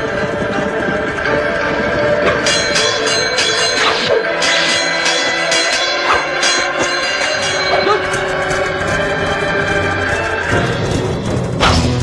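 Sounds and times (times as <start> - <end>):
action music with driving percussion: 2.2 - 12.0.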